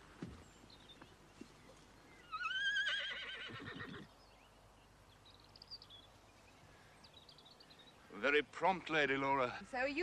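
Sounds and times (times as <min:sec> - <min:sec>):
horse whinnying: 0:02.2 - 0:04.1.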